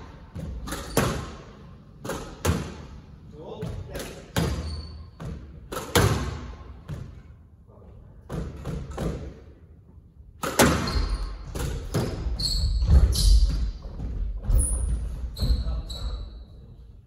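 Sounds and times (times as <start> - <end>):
squash ball knocks echoing: 0.2 - 3.0, 3.6 - 7.2, 10.4 - 14.2.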